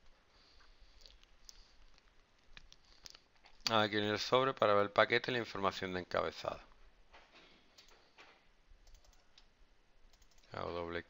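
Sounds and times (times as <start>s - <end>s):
man speaking: 3.7s - 6.7s, 10.5s - 11.0s
computer input clicks: 8.8s - 9.5s, 10.1s - 10.5s.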